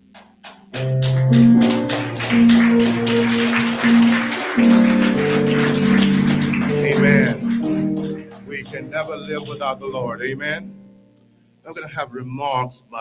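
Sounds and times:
light percussion beat: 0.0s - 9.8s
electronic keyboard chords: 0.6s - 11.3s.

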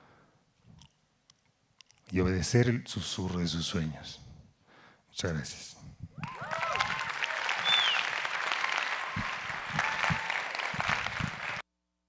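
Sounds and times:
audience applauding: 6.2s - 11.6s.

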